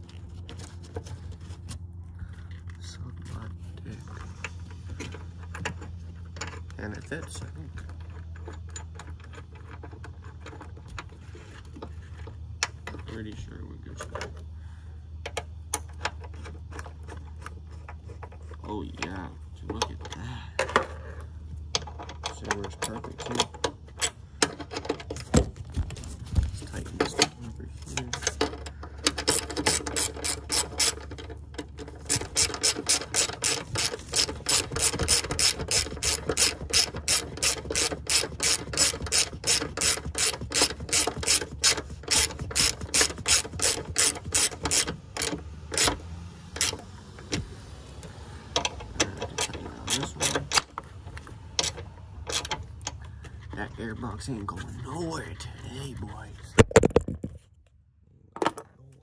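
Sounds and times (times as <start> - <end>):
ratchet wrench clicking: 29.0 - 31.2, 31.8 - 46.0, 46.6 - 46.8.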